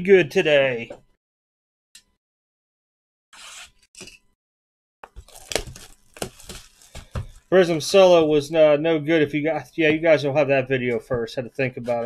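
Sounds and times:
plastic wrap crinkling: 5.1s - 7.5s
plastic shrink wrap ripping: 5.2s - 7.5s.

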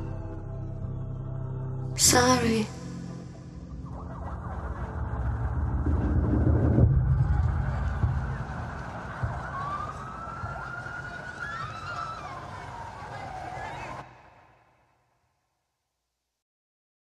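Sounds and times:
street noise rumble: 3.1s - 14.4s
siren wail: 3.7s - 14.1s.

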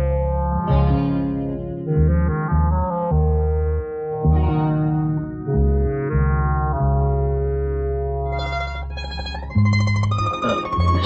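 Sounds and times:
heavy bass line: 0.0s - 11.0s
held orchestral notes: 8.3s - 11.0s.

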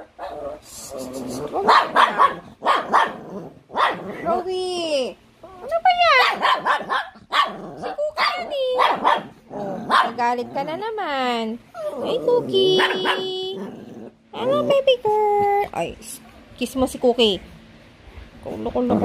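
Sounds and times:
small dogs barking: 1.5s - 4.4s, 6.0s - 10.7s, 11.8s - 13.7s.

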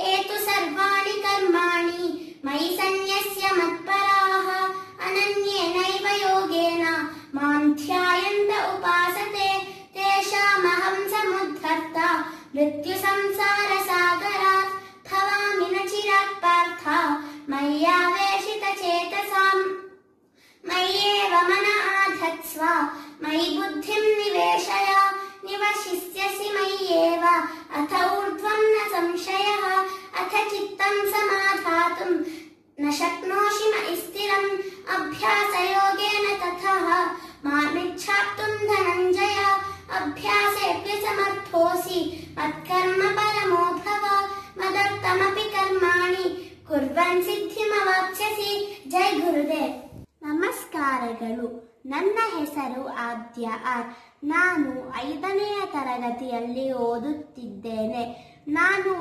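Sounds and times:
girl singing unaccompanied: 0.0s - 59.0s.

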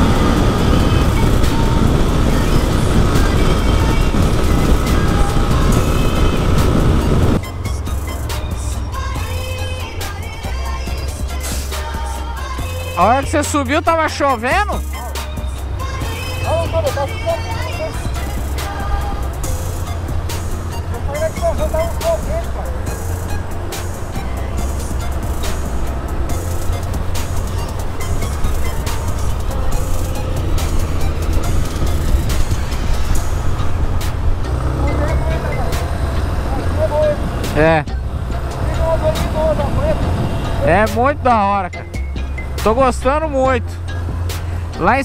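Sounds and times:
wind rumble on microphone: 0.0s - 13.0s, 14.8s - 41.3s
motorcycle engine running: 0.0s - 45.0s.

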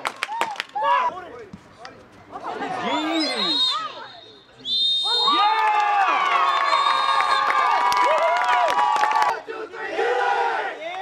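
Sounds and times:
crowd shouting and cheering: 5.0s - 11.0s.

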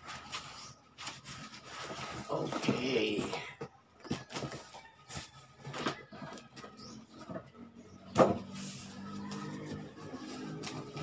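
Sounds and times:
cardboard box rummaging: 0.4s - 3.5s.

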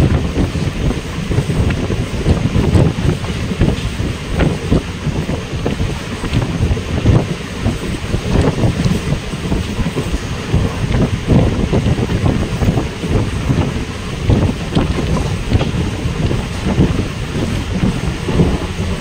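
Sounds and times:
train rumbling on track: 0.0s - 19.0s
wind buffeting microphone: 0.0s - 19.0s.

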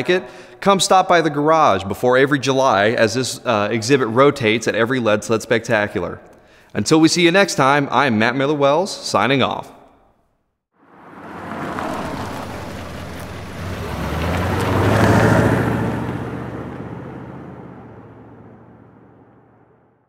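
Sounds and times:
car driving past: 10.8s - 20.0s.

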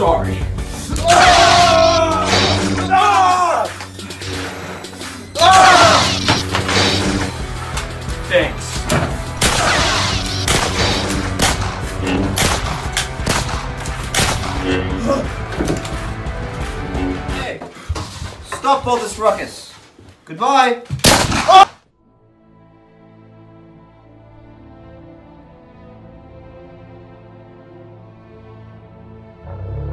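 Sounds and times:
background music with bass line: 0.0s - 17.6s
man yelling: 1.0s - 3.8s, 5.4s - 6.1s.

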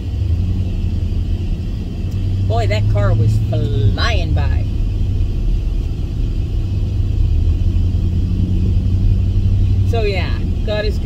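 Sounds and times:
vehicle rumble from inside cab: 0.0s - 11.0s.

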